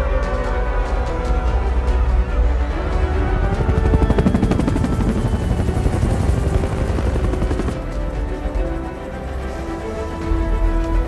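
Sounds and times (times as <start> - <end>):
helicopter rotor chop: 2.6 - 10.6.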